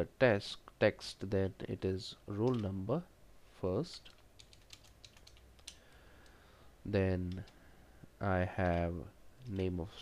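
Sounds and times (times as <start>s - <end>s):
computer keyboard typing: 4.0s - 5.8s.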